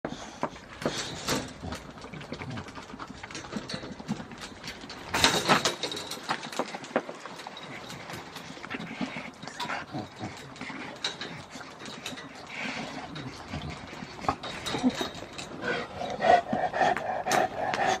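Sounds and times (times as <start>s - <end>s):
dogs mouthing and scuffling: 0.1s - 18.0s.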